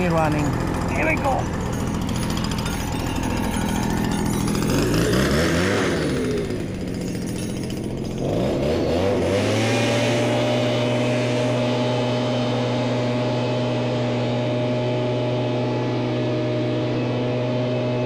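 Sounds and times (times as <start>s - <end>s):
small engine revving: 0.0s - 18.0s.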